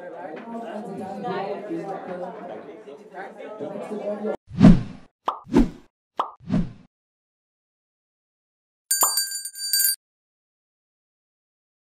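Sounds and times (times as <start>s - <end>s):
bell-like ringing chime: 8.9s - 10.0s.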